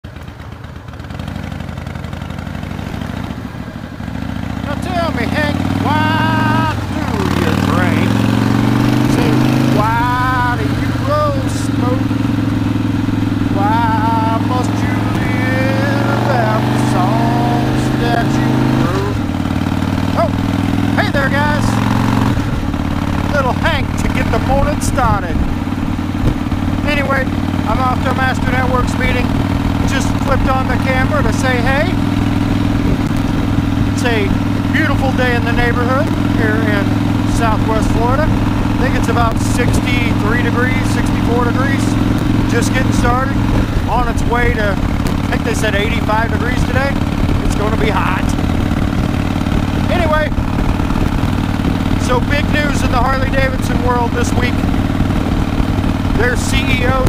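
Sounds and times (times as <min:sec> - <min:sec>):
motorcycle engine running: 0:00.0 - 0:57.0.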